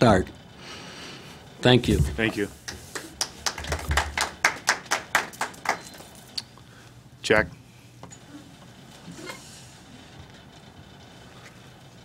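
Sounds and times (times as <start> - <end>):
people clapping: 2.6 - 6.4.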